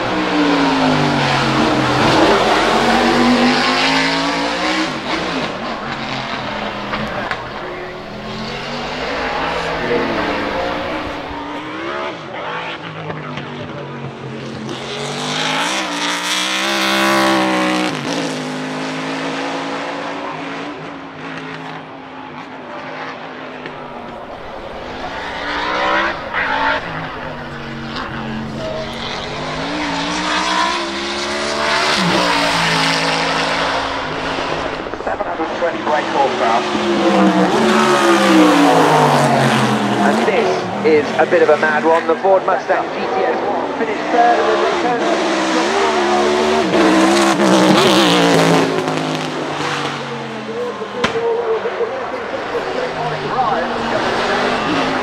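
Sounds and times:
race car engine revving: 0.0s - 55.0s.

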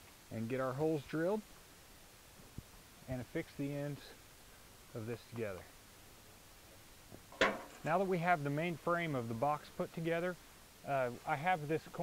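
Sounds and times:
background hiss: 0.0s - 12.0s
man speaking: 0.3s - 1.4s, 3.1s - 4.2s, 5.0s - 5.7s, 7.8s - 12.0s.

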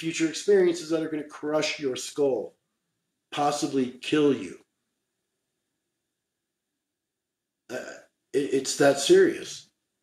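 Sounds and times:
man saying uh: 7.7s - 9.6s.

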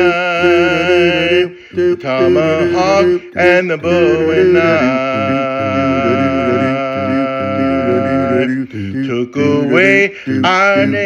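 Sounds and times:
man singing a cappella chord: 0.0s - 11.0s.

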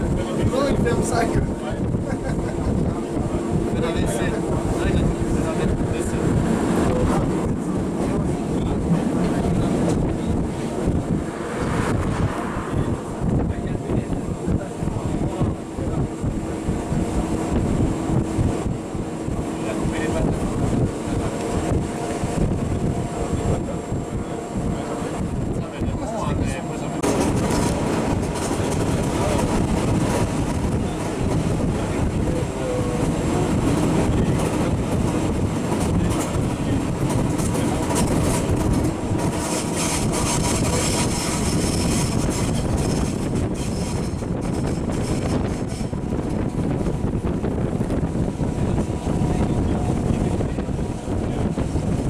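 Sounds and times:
train wheels rumbling: 0.0s - 52.0s
wind on microphone: 0.0s - 52.0s.

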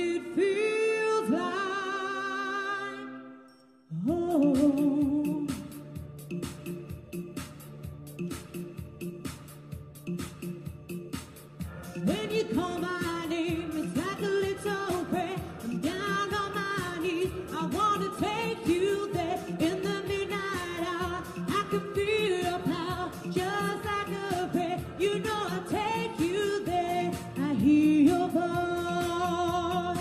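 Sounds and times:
woman singing into a microphone: 0.0s - 5.8s, 12.0s - 30.0s
instrumental accompaniment: 3.5s - 30.0s.

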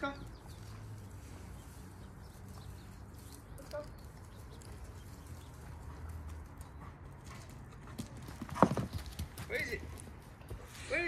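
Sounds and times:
footsteps on grass: 0.0s - 6.0s.

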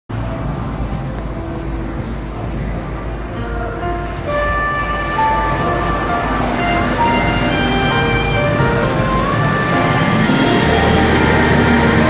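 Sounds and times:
instrumental backing track: 1.1s - 12.0s.

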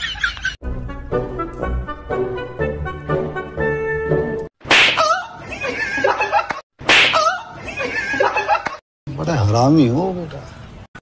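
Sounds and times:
loud sharp slap: 4.6s - 5.1s, 6.8s - 7.3s.

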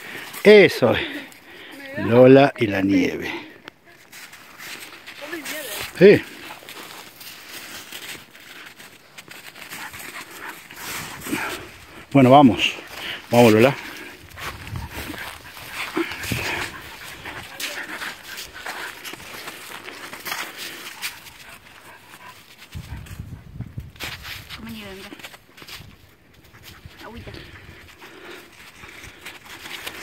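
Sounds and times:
footsteps crunching on snow and grass: 3.9s - 30.0s.

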